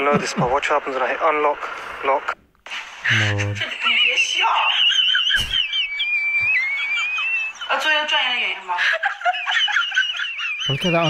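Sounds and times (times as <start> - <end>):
high wavering whistle-like tone: 3.9 - 8.3.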